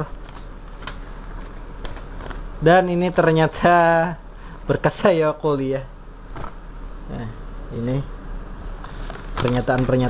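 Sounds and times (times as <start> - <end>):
low steady hum: 0.0 - 10.0
paper crinkling: 0.1 - 2.5, 8.8 - 10.0.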